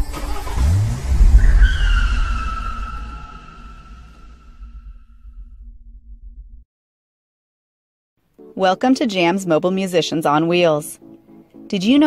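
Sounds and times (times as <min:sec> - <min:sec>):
car engine revving: 0:00.0 - 0:05.5
tire screech: 0:00.0 - 0:05.6
low rumble: 0:00.4 - 0:06.6.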